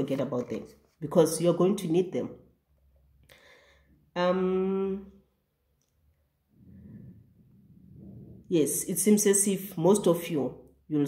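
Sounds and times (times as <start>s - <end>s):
low rumbling noise: 6.4s - 8.6s.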